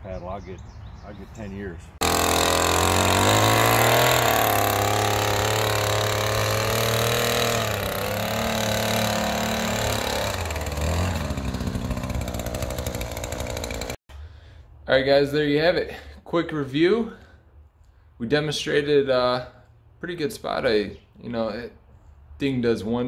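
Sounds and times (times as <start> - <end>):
small two-stroke engine running: 2.0 - 14.0.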